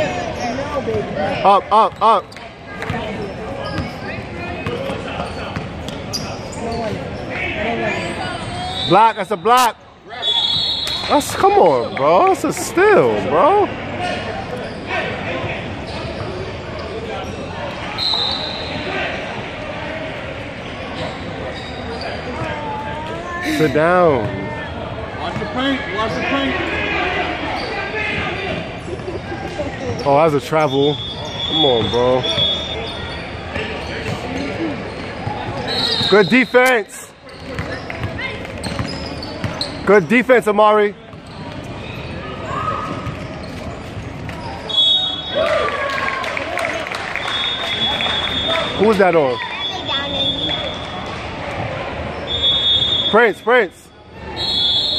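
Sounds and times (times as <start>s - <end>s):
gym background noise: 0.0s - 54.9s.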